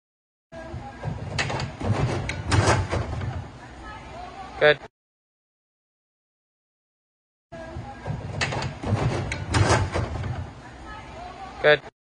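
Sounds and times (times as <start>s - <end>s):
springboard thud: 1.1s - 3.5s, 8.0s - 10.6s.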